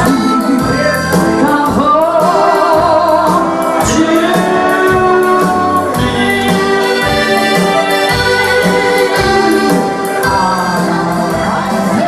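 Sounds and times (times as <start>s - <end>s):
electronic keyboard music: 0.0s - 12.0s.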